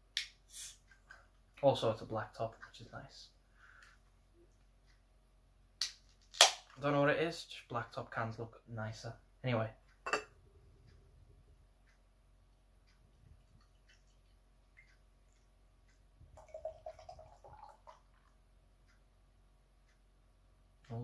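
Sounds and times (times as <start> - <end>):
beer pouring and fizzing: 16.4 - 18.3.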